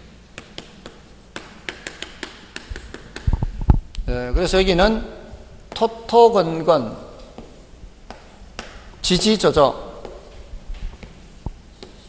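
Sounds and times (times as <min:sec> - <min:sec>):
chalk clicking on chalkboard: 0:00.4 - 0:03.4, 0:11.0 - 0:12.0.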